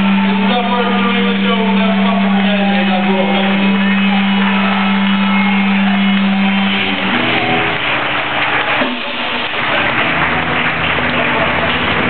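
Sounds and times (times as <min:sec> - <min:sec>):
crowd murmur in large hall: 0:00.0 - 0:12.0
held low note from amplified band: 0:00.0 - 0:12.0.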